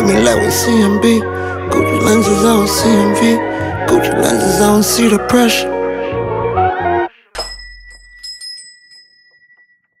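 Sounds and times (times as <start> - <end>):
hip-hop beat: 0.0 - 6.6
bright bell-like ding: 7.4 - 10.0.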